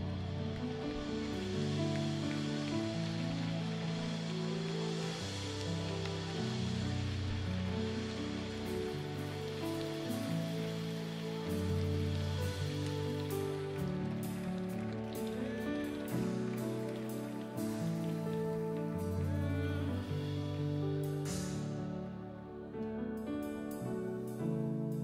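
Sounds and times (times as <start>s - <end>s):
soft hiss: 0.0s - 25.0s.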